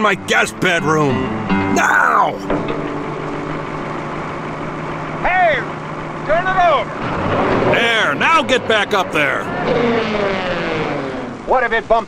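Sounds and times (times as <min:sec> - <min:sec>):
diesel engine idling: 0:00.0 - 0:11.7.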